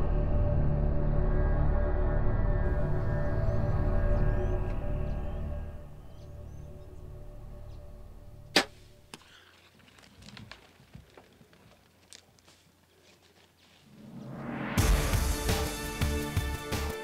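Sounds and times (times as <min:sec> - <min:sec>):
music with low sustained tones: 0:00.0 - 0:09.0
bow shot crack: 0:08.5 - 0:09.1.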